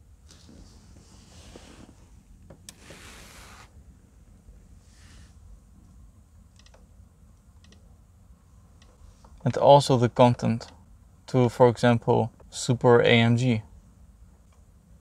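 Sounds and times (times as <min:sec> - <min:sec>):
soft hissing rustles: 0:00.2 - 0:03.8, 0:04.6 - 0:05.7.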